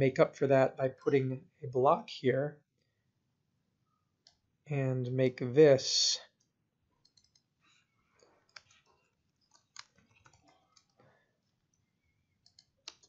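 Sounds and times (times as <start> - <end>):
mouse clicks: 7.0 - 7.5, 12.4 - 13.0.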